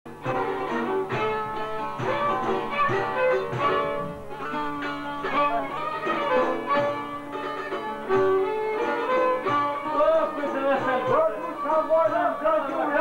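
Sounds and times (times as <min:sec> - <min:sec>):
accordion sustained tones: 0:00.1 - 0:13.0
plucked long-necked lutes: 0:00.1 - 0:13.0.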